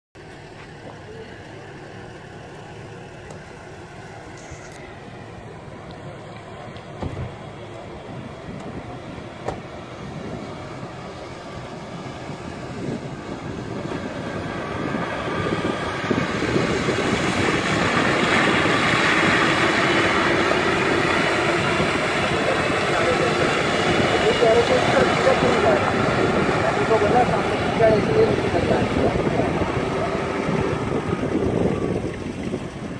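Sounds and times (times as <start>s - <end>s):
vehicle engine approaching: 0.2s - 32.9s.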